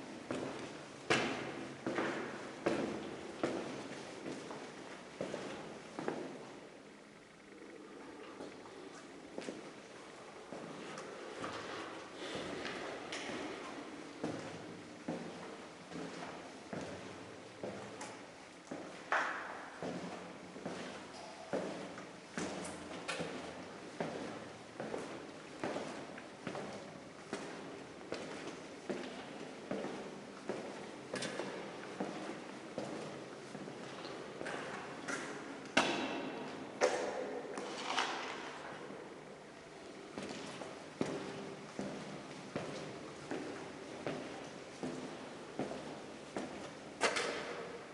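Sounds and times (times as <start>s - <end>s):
footsteps on concrete floor: 0.3s - 6.5s, 10.5s - 38.9s, 39.9s - 47.7s.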